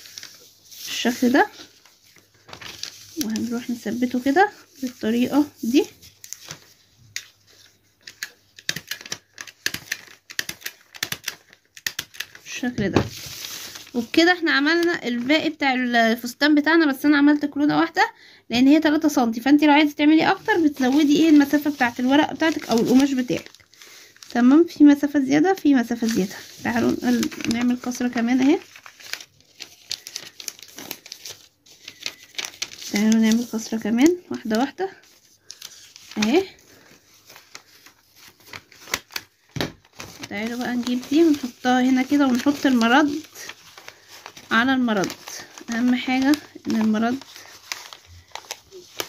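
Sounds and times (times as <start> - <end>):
paper clicks and rustles: 0.0 - 15.4, 20.4 - 24.4, 25.9 - 49.0.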